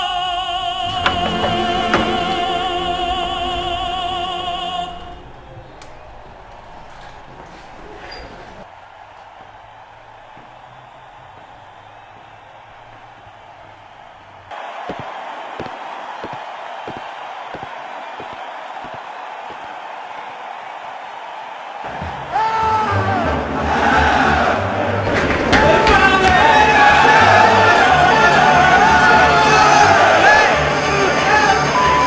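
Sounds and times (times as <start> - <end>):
crowd chanting and singing: 0.0 - 32.0.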